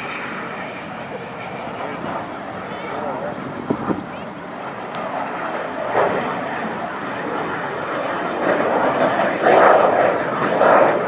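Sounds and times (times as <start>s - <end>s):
indistinct crowd voices: 0.0s - 11.0s
jet aircraft flying past: 0.0s - 11.0s.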